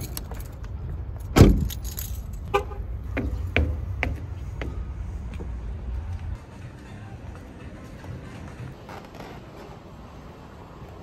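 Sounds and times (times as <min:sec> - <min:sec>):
footsteps on asphalt: 0:02.5 - 0:08.9.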